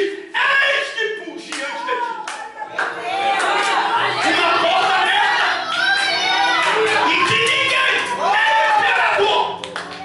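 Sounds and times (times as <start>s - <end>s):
sharp hand claps: 9.6s - 10.0s.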